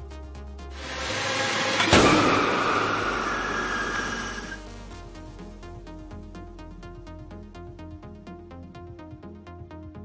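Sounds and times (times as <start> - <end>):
loud car crash: 0.8 - 4.6
faint high squeal: 1.2 - 4.6.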